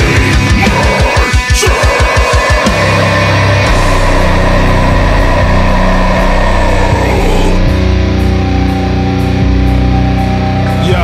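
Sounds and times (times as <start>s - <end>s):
distorted guitars and bass droning: 0.0s - 11.0s.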